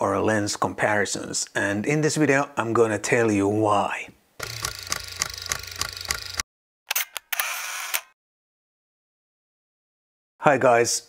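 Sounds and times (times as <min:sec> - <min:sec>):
camera shutter clicks: 0:04.4 - 0:08.2.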